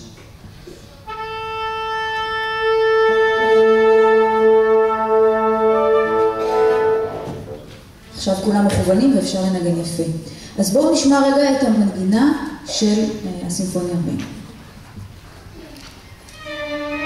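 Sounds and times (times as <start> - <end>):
instruments on same pitch: 1.0 - 7.6
wind instrument tuning note: 1.0 - 7.6.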